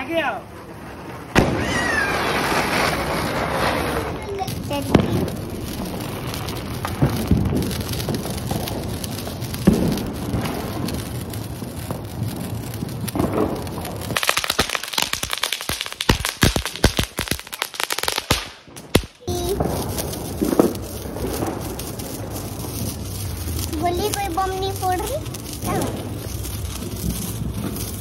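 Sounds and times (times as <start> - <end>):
firework pops and crackles: 0.0 - 28.0
fireworks fizzing: 0.0 - 28.0.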